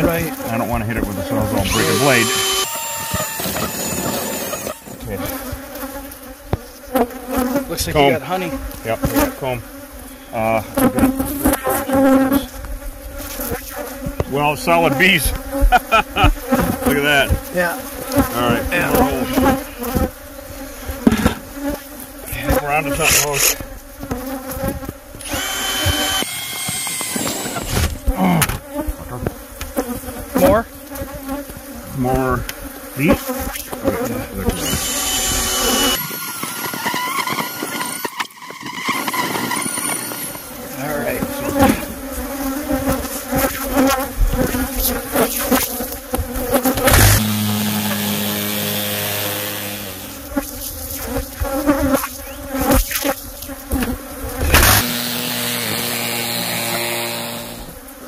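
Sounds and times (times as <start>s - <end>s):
bees buzzing loudly: 0.0s - 58.0s
cordless drill running: 1.6s - 5.0s, 25.2s - 28.1s, 34.5s - 40.6s, 46.8s - 50.3s, 54.5s - 57.8s.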